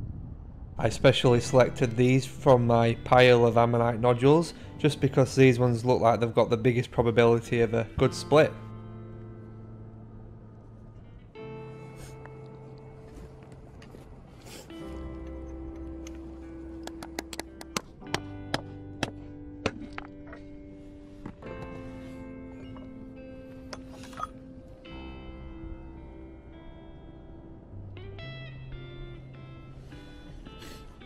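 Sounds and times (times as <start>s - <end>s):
slow sustained chord music: 0.9s - 31.0s.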